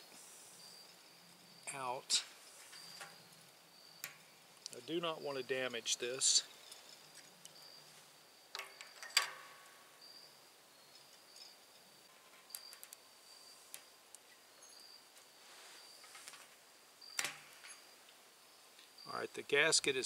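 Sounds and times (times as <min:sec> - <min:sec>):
faint high insect trill: 0:00.0 - 0:20.0.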